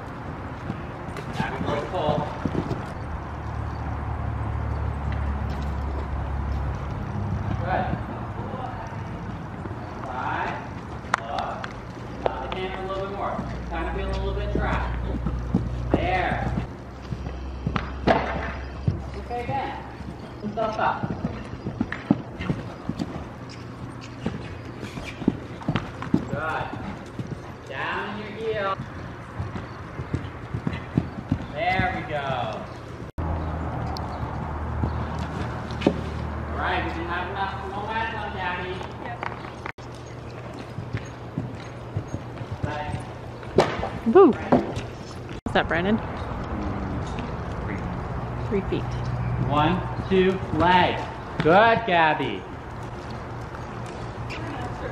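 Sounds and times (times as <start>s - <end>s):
horse hoofbeats on dirt: 0.0s - 54.9s
voices talking: 6.1s - 43.4s, 44.0s - 54.9s.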